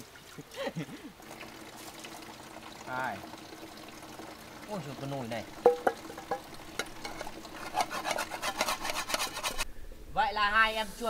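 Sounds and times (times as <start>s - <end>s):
water pouring and trickling: 0.0s - 9.6s.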